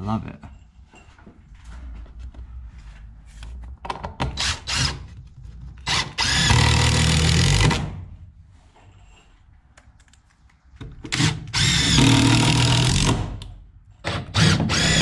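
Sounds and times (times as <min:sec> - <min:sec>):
cordless drill boring into wood: 0:05.8 - 0:07.8, 0:11.1 - 0:13.2, 0:14.1 - 0:15.0.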